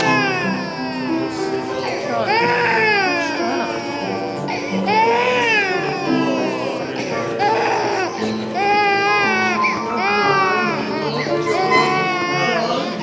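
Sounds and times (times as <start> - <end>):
baby crying: 0.0 - 13.0
background music with held notes: 0.0 - 13.0.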